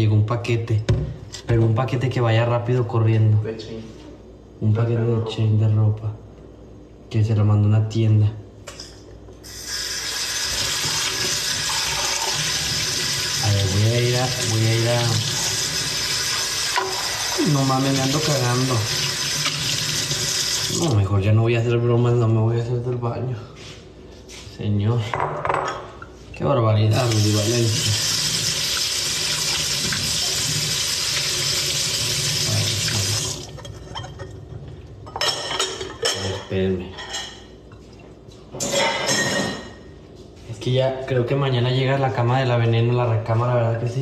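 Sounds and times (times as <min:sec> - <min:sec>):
faucet running into sink: 0:09.5 - 0:21.0, 0:27.0 - 0:33.6.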